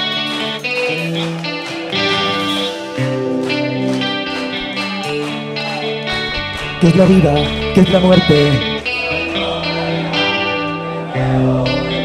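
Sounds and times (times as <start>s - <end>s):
rock band with electric guitar: 0.0s - 12.0s.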